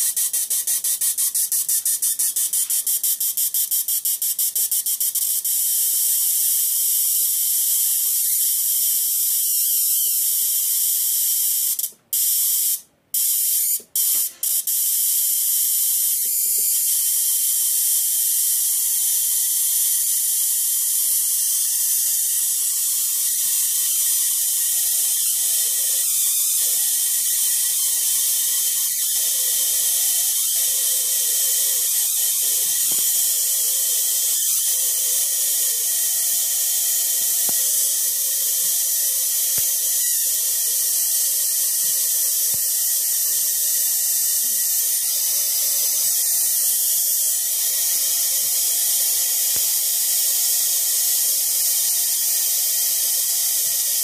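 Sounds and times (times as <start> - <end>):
spark gap clicking and hissing: 0.0 - 54.0.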